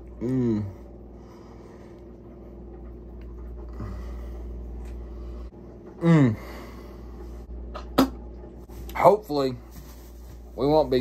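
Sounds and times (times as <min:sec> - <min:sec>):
steady low hum: 0:00.0 - 0:11.0
man humming short mm: 0:00.2 - 0:00.8.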